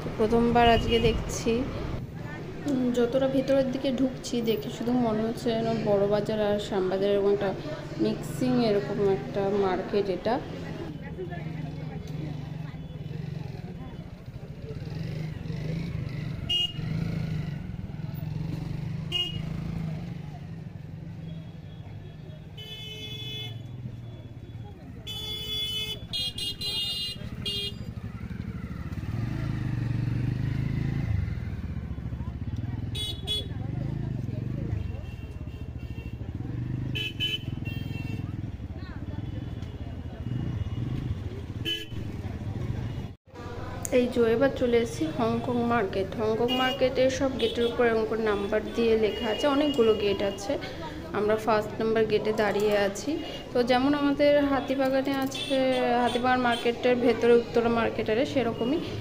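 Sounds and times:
murmur of crowd voices: 0.0 - 22.7, 23.6 - 59.0
scooter and motorbike engines: 0.0 - 59.0
vehicle horns honking: 16.4 - 17.0, 19.1 - 19.6, 21.3 - 24.2, 25.0 - 28.0, 32.9 - 33.6, 34.7 - 38.4, 39.1 - 42.1, 46.5 - 50.5.

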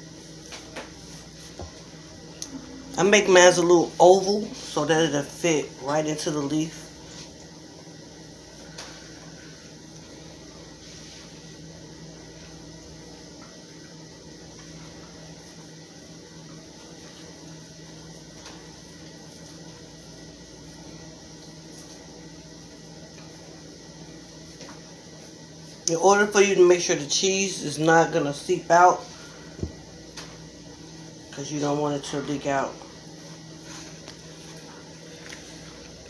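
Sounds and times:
low mechanical hum: 0.0 - 36.0.

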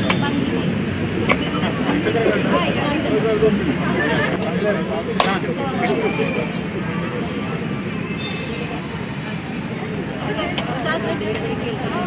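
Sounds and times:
crowd chatting: 0.0 - 12.0.

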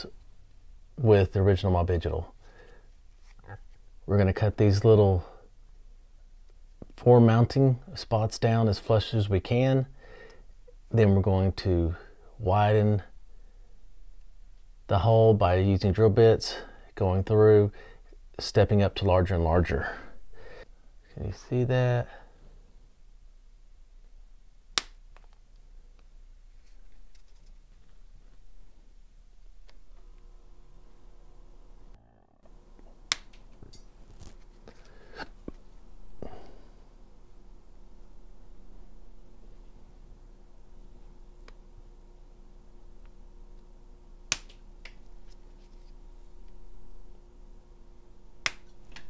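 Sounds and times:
sharp plastic snap: 24.8 - 25.4, 33.1 - 33.5, 44.3 - 45.0, 48.4 - 49.0.

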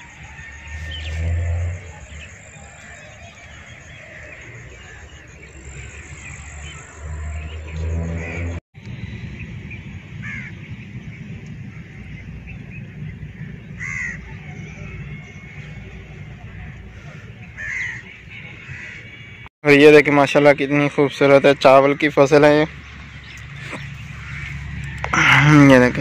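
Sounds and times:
crows cawing: 10.2 - 10.6, 13.8 - 14.2, 17.0 - 19.0, 24.2 - 25.4.

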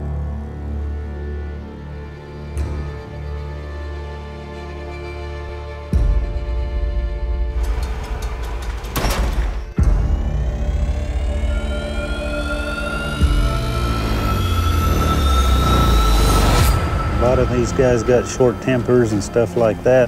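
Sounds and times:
deep low drone: 0.0 - 20.0
rising whine: 9.6 - 20.0.

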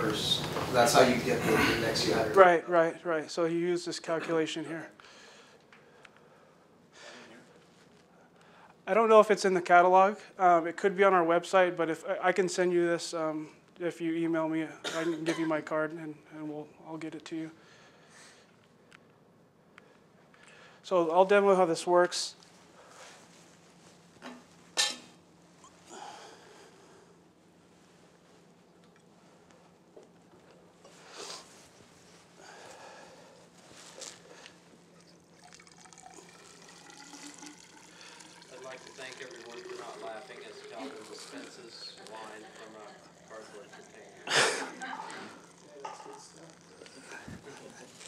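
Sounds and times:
faint steady hum: 0.0 - 48.0.

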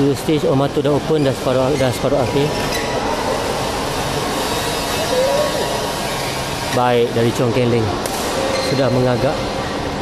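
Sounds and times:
ventilation fans rushing: 0.0 - 10.0.

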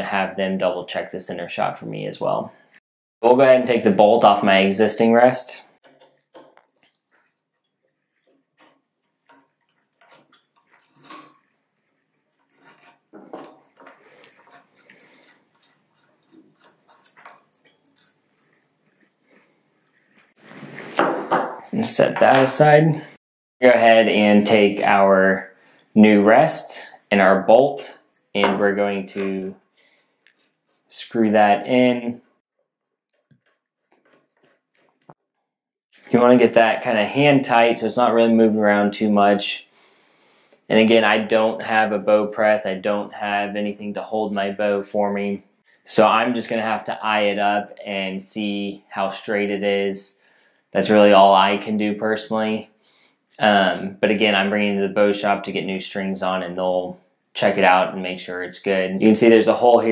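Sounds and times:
metal parts clicking and scraping: 5.8 - 19.0.

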